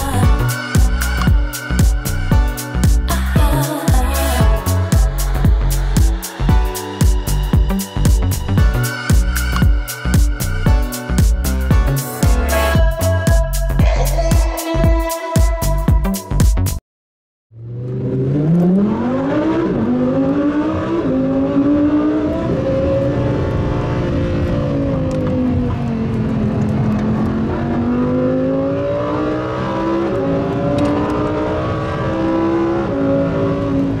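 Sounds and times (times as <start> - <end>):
car engine accelerating through gears: 17.6 - 34.0.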